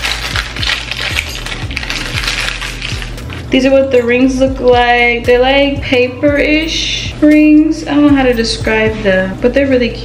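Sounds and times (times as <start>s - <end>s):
deep bass music beat: 0.0s - 10.0s.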